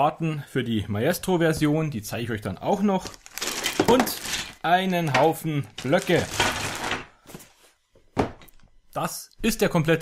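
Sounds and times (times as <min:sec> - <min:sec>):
box set down on wooden table: 0:08.1 - 0:08.5.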